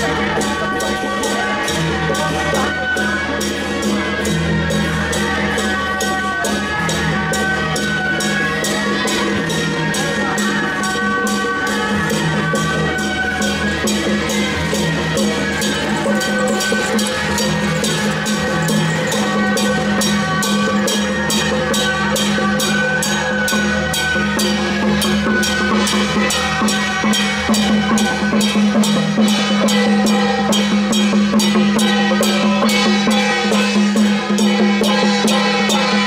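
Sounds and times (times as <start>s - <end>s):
drums and gongs beating: 0.0s - 36.0s.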